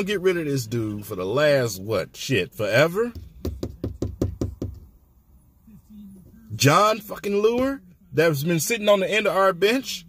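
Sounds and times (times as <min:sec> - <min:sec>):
rapid knocks: 0:03.1 - 0:04.9.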